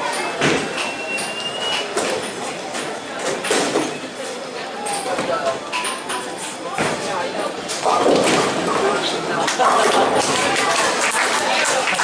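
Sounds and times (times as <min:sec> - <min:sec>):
bowling pins clattering: 0:05.1 - 0:11.2
bowling balls rolling: 0:05.1 - 0:11.9.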